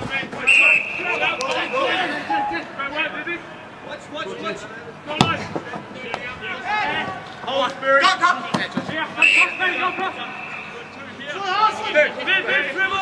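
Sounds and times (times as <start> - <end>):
steady high tone: 2.3 - 3.0.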